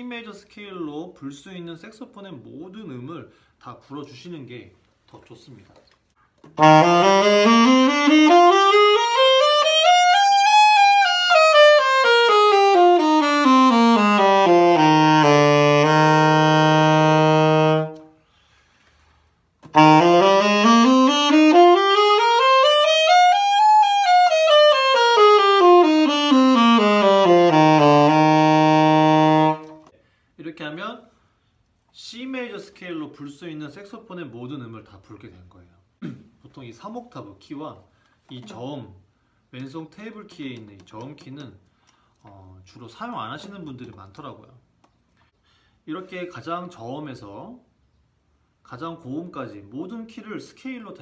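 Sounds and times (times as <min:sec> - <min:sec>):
alto saxophone playing a scale: 0:06.5 - 0:18.2, 0:19.6 - 0:29.9.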